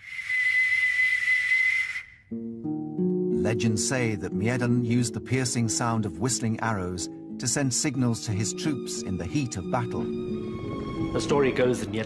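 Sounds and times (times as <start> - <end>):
breathy whistle: 0.0 - 2.3.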